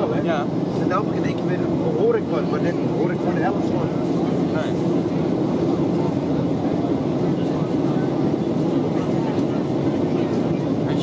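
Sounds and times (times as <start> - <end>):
airplane engines droning: 0.0 - 11.0.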